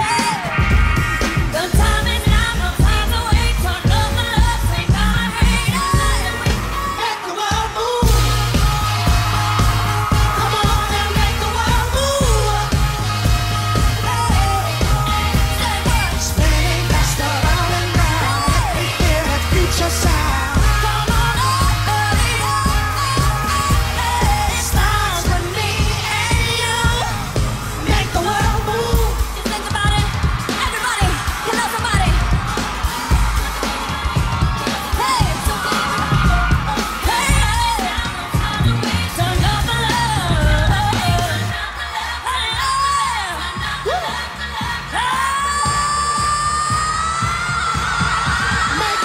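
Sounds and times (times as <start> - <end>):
person singing: 0.0 - 32.2
dance track with drum beat: 0.0 - 49.0.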